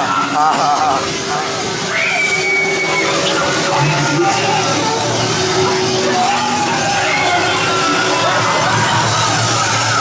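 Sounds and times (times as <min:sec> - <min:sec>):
low steady drone: 0:00.0 - 0:09.9
high-pitched scream: 0:01.9 - 0:04.9.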